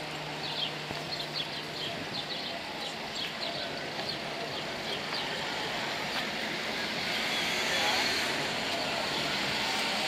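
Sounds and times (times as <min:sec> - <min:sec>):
distant voices murmuring: 0:00.0 - 0:10.0
outdoor background noise: 0:00.0 - 0:10.0.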